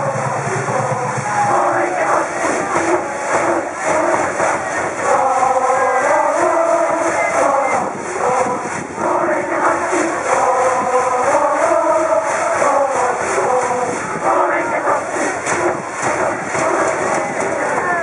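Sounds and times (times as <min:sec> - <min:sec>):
crowd singing and shouting: 0:00.0 - 0:18.0.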